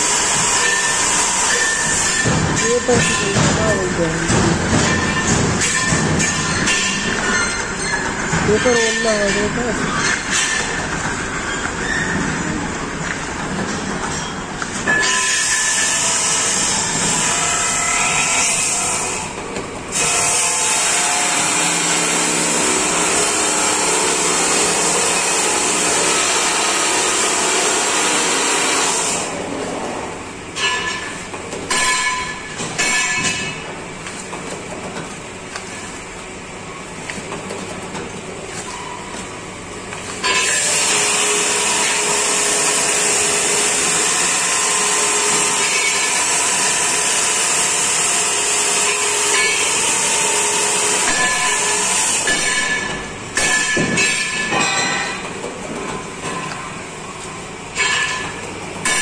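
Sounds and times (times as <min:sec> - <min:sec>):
paper bowl making machine running: 0:00.0 - 0:59.0.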